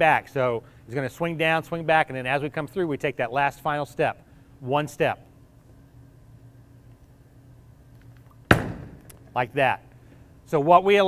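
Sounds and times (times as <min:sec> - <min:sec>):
low steady hum: 0:00.0 - 0:11.0
bowling ball thud: 0:08.5 - 0:09.1.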